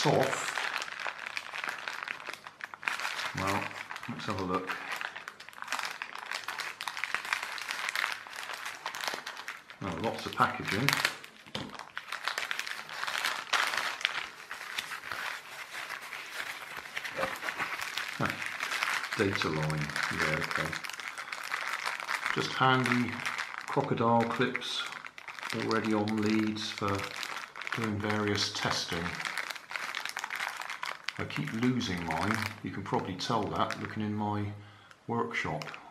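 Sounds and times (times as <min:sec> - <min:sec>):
plastic packaging crinkling: 0:00.0 - 0:34.2, 0:35.3 - 0:35.9.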